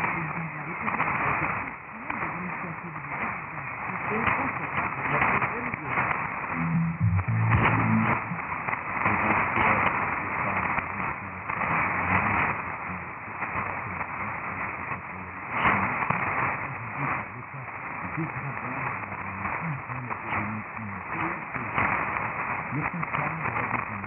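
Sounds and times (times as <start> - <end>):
faint radio programme audio: 0.0 - 24.0
radio static and hiss: 0.0 - 24.0.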